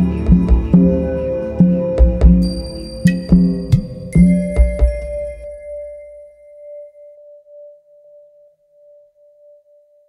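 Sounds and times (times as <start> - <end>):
faint higher tone: 1.1 - 10.0
long ringing tone: 1.8 - 8.4.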